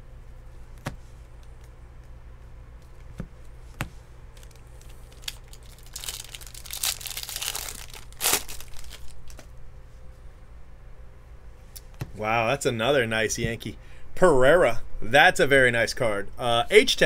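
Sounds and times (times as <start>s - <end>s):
wrapper tearing and crinkling: 4.4s - 9.5s.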